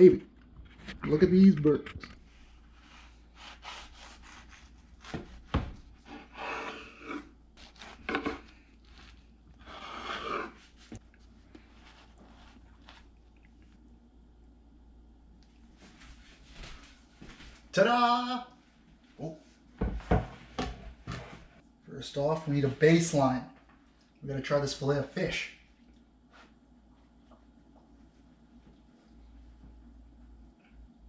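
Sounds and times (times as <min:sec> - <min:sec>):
knife sawing through bread: 0:02.8 - 0:05.4, 0:06.0 - 0:10.9.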